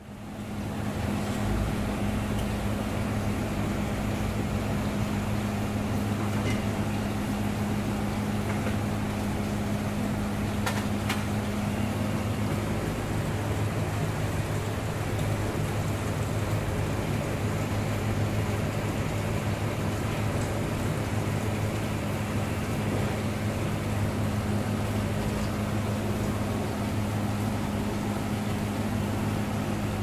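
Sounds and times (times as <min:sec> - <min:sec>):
low mechanical hum: 0:00.0 - 0:30.0.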